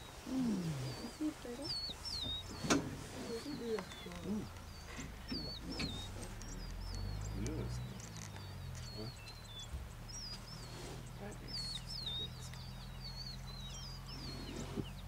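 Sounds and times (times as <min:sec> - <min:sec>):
birds whistling: 0:00.0 - 0:15.0
low murmuring voices: 0:00.3 - 0:13.3.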